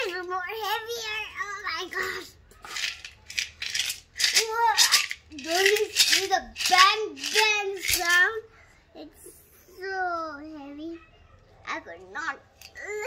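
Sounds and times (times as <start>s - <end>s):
coins rattling in a piggy bank: 2.6s - 8.3s
girl vocalising high-pitched: 12.8s - 13.0s.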